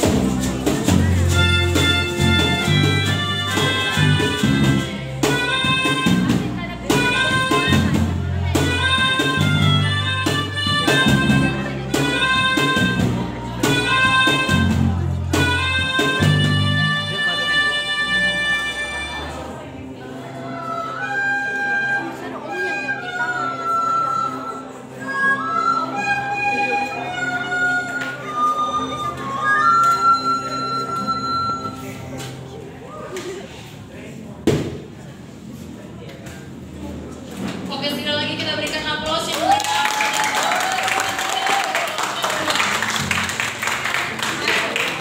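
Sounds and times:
melodica ensemble playing: 0:00.4 - 0:19.7, 0:20.4 - 0:32.2.

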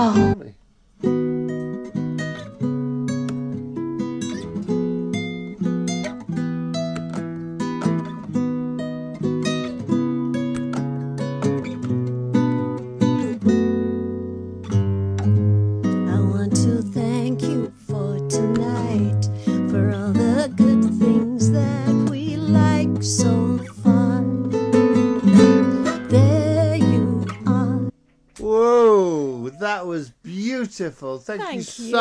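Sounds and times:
fingerpicked classical guitar: 0:00.0 - 0:28.4.

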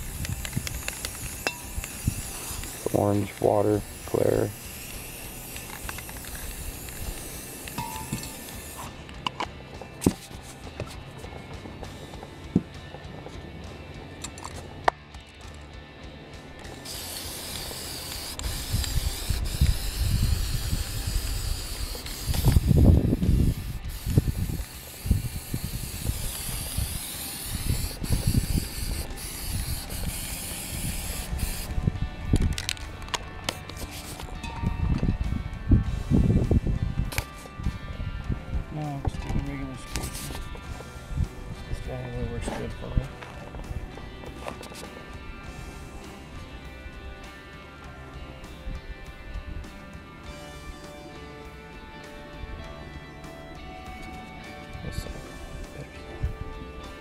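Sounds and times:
spray paint can hissing: 0:00.0 - 0:12.8, 0:16.6 - 0:34.6, 0:39.4 - 0:41.4.

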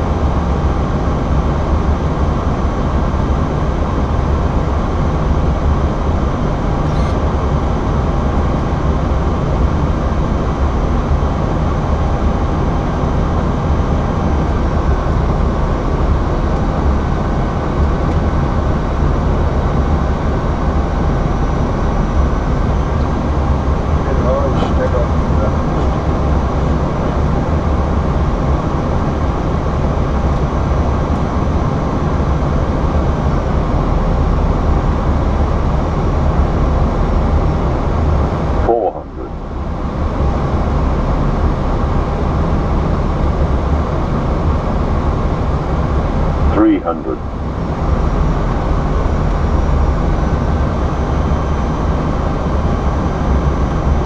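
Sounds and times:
cockpit airflow and engine noise: 0:00.0 - 0:54.0.

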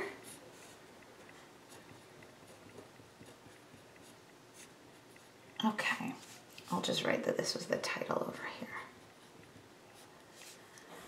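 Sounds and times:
pen scratching on paper: 0:00.2 - 0:06.8.

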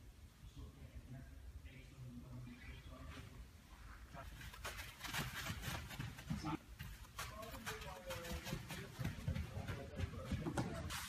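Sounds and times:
footsteps on artificial turf: 0:03.1 - 0:11.0.

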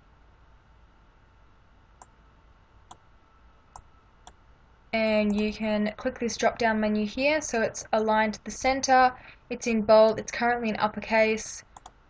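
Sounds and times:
faint background hum: 0:00.0 - 0:12.0.

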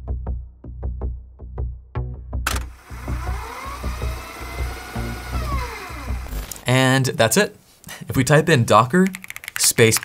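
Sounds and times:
background music with steady beat: 0:00.0 - 0:06.4
tape fast-forward whirring: 0:02.5 - 0:06.6.

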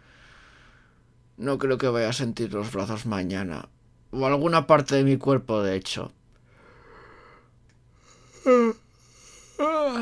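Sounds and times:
man sighing: 0:07.2 - 0:10.0.

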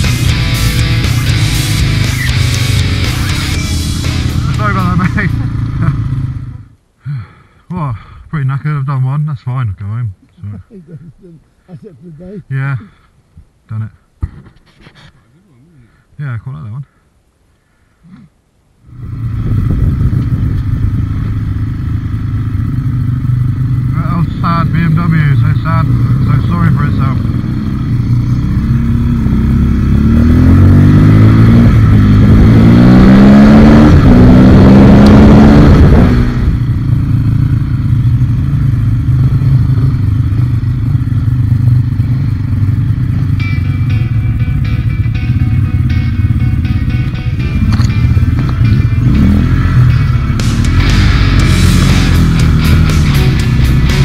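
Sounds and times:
motorcycle engine revving: 0:00.0 - 0:06.8, 0:18.9 - 0:54.0.

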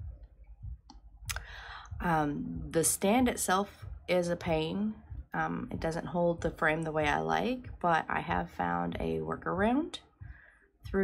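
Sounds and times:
person breathing in: 0:01.4 - 0:02.0, 0:10.2 - 0:10.7.

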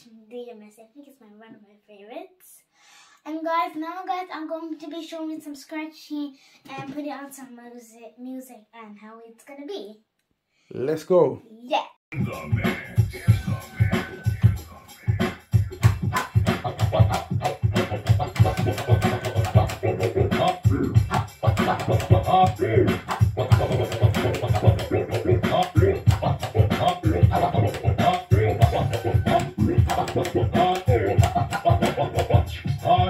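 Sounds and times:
music track with steady beat: 0:12.1 - 0:33.0
dj scratching: 0:12.2 - 0:33.0.

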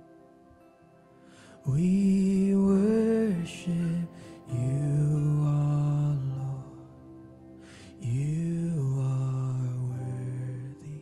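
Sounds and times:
soft musical backing: 0:00.0 - 0:11.0
person singing long low note: 0:01.5 - 0:11.0.

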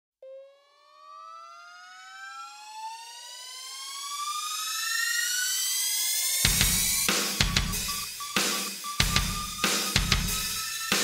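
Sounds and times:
synthesized rising tone: 0:00.2 - 0:11.0.

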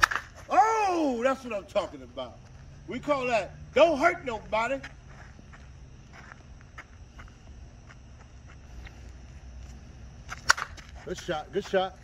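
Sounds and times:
softball bat cracking a ball: 0:00.0 - 0:00.5, 0:10.3 - 0:11.0.

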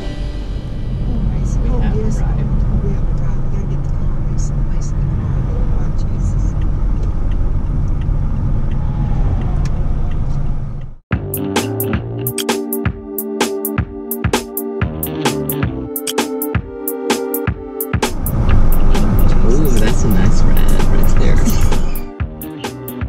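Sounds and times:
car road and engine noise: 0:00.0 - 0:11.1, 0:17.6 - 0:22.2
music with a beat: 0:11.1 - 0:23.0.

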